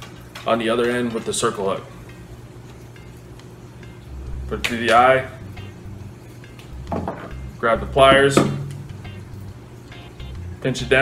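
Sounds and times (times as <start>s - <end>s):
steady low hum: 1.8s - 11.0s.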